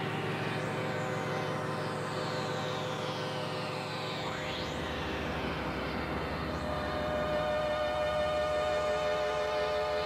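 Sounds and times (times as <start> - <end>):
eerie synthesizer chord: 0.0 - 10.0
low pulsing throb: 0.0 - 10.0.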